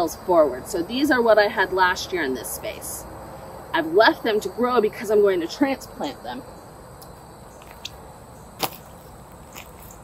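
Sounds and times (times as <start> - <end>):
low outdoor hiss: 0.0 - 10.0
footstep in mulch: 7.5 - 10.0
flip-flop slapping heel: 7.6 - 8.0, 8.6 - 10.0.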